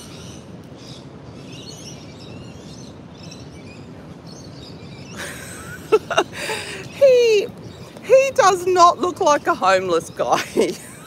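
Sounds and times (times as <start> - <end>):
birds chirping: 0.0 - 11.0
steady background hum: 0.0 - 11.0.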